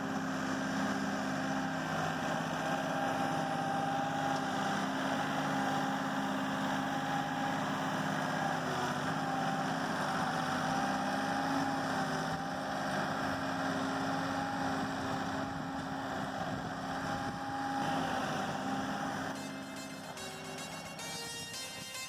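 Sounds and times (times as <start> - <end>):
tractor diesel engine running: 0.0 - 22.0.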